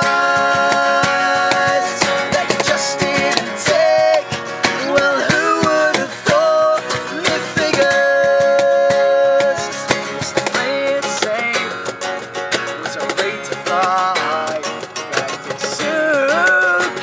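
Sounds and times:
person singing: 0.0 - 11.8, 12.8 - 17.0
acoustic guitars strummed: 0.0 - 17.0
cajon beat: 0.0 - 17.0.

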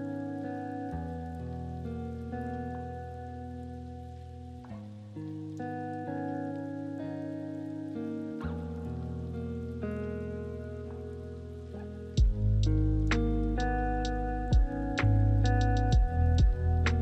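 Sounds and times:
soft sustained chords: 0.0 - 17.0.

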